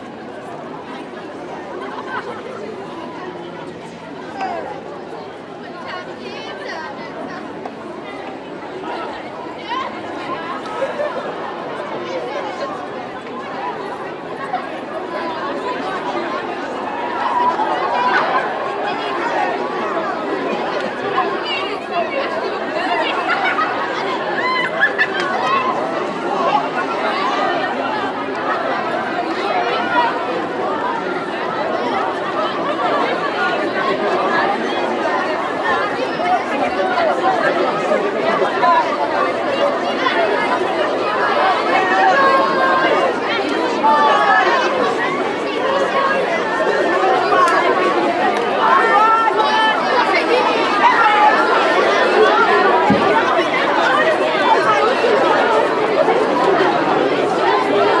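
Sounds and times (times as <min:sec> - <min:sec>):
schoolchildren chattering: 0:00.0 - 0:58.0.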